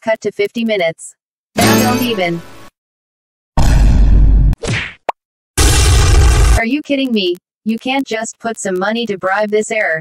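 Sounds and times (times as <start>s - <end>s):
heavy cartoon hit: 3.6s - 4.8s, 5.6s - 6.6s.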